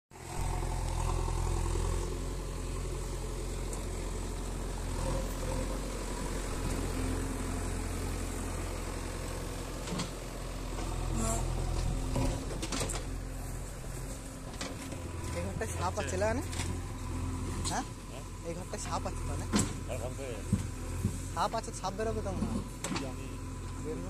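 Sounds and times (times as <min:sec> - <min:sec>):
diesel engine running: 0:00.1 - 0:24.0.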